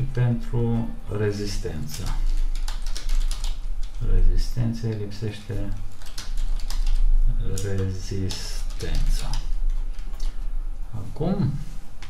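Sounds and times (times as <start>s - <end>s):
computer keyboard typing: 1.9s - 4.1s, 5.7s - 10.4s.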